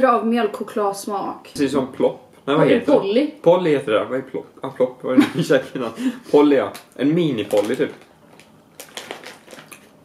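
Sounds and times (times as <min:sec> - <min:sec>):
plastic bag crinkling: 0:07.3 - 0:10.0.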